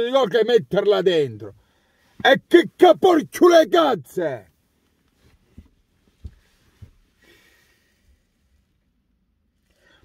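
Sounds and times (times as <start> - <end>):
faint breath: 1.6 - 2.2, 6.3 - 8.3, 9.6 - 10.0
soft low thumps: 5.5 - 7.1.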